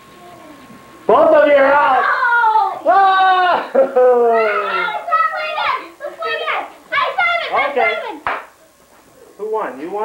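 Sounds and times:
children calling out excitedly: 1.8 - 3.6, 4.2 - 8.3.

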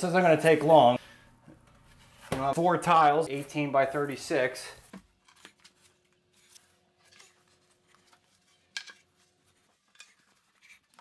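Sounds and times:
tiles scraping and tapping: 8.5 - 11.0.

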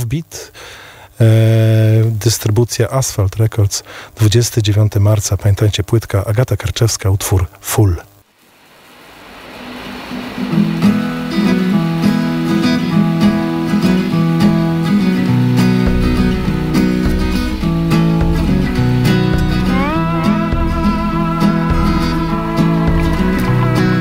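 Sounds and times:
acoustic guitar: 9.7 - 24.0
gliding melody line: 10.2 - 24.0
deep bass: 15.3 - 24.0.

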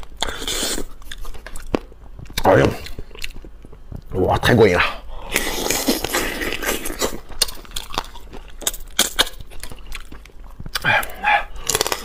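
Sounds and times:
wet sucking and chewing: 5.3 - 12.0.

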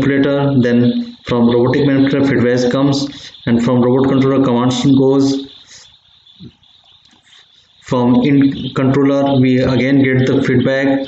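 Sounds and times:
man talking: 0.0 - 5.8, 7.8 - 11.0
faint hiss: 0.1 - 9.4.

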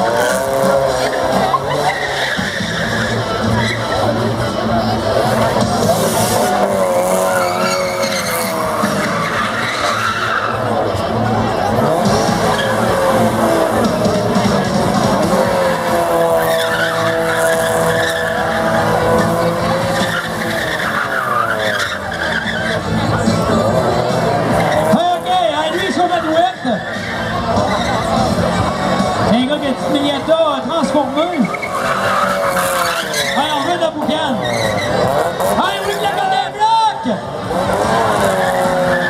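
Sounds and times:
car engine at high revs: 0.0 - 39.0
tyres squealing: 0.0 - 39.0.

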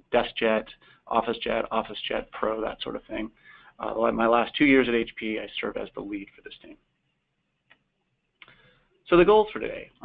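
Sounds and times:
faint click: 7.6 - 8.6.

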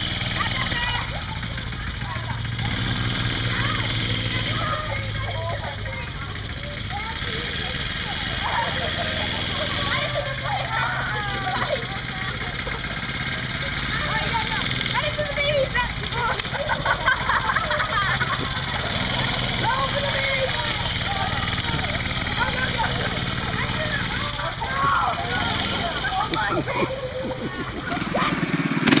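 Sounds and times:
children's voices and shouts: 0.0 - 29.0
mini-bike engine idling: 0.0 - 29.0.

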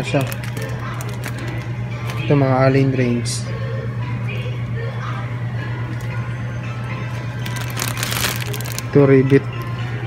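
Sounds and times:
packaging crinkling: 0.0 - 2.2, 7.4 - 9.1
steady low hum: 0.0 - 10.0.

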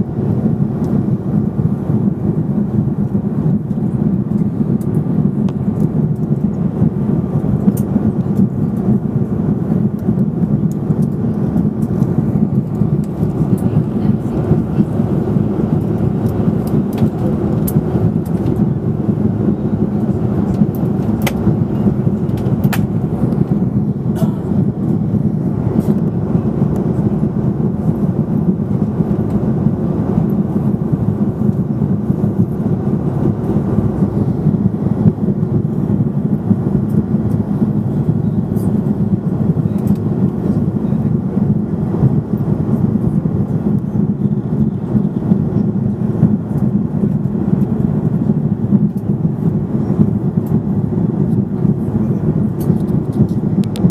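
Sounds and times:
rushing air: 0.0 - 42.6
jet engines droning: 0.0 - 53.9.

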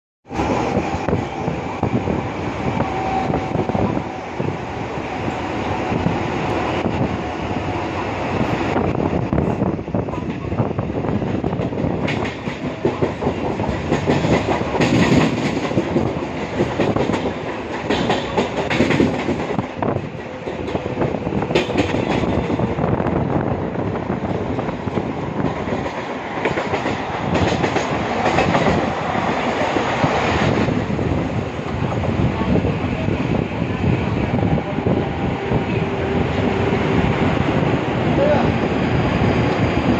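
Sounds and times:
train rumble and air rush: 0.2 - 39.9
wheels clacking over rail joints: 11.3 - 22.8, 24.9 - 30.5.

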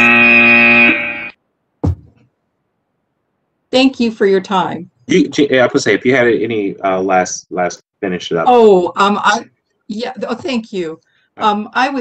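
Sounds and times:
low thud: 1.8 - 2.2.

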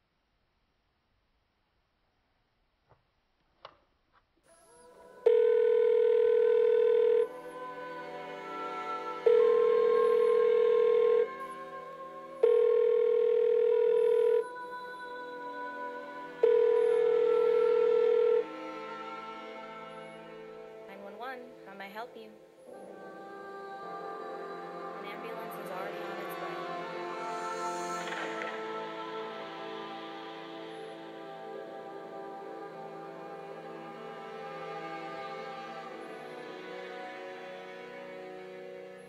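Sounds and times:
background music: 4.5 - 39.0
telephone off-hook tone: 5.2 - 7.4, 9.2 - 11.4, 12.4 - 14.6, 16.3 - 18.8.

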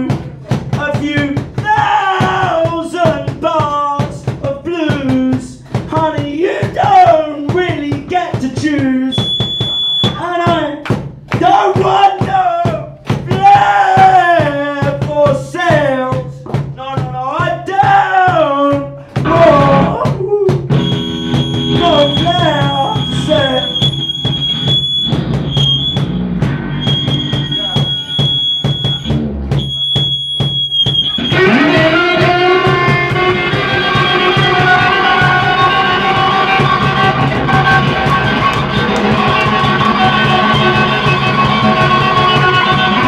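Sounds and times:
drum hits: 0.0 - 43.0
person singing: 16.9 - 20.7, 31.1 - 43.0
live band music: 19.2 - 20.1, 20.7 - 43.0
electric guitar: 20.7 - 24.7, 31.0 - 43.0
piercing high tone: 20.7 - 31.9.

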